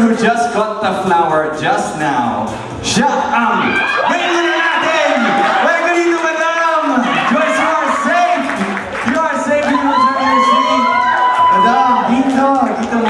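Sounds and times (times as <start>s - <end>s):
guests cheering and whooping: 3.2s - 13.0s.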